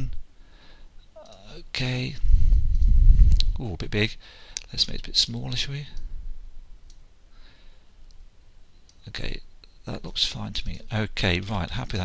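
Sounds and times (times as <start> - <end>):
soft breath: 0.4 - 1.0, 2.2 - 3.5, 4.2 - 4.6, 7.3 - 8.0.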